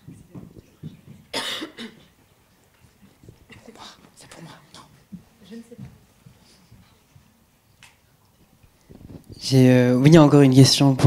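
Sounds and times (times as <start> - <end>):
faint murmuring: 0.0 - 9.5
person coughing: 1.3 - 2.1.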